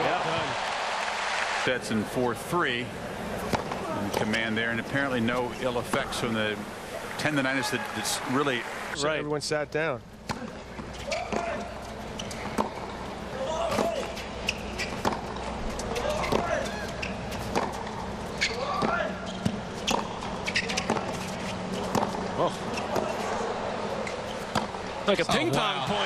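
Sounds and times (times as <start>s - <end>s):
tennis ball bouncing: 3.4s - 4.4s, 10.3s - 15.5s, 17.3s - 17.9s.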